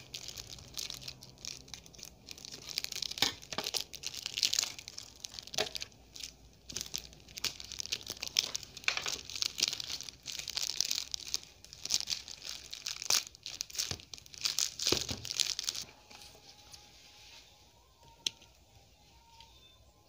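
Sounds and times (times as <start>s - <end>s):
plastic wrapping tearing and crinkling: 0.0s - 16.8s.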